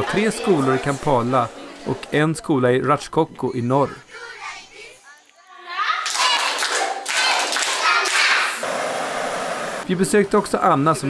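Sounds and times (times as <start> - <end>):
children's voices: 3.8 - 8.6
group clapping: 6.0 - 9.1.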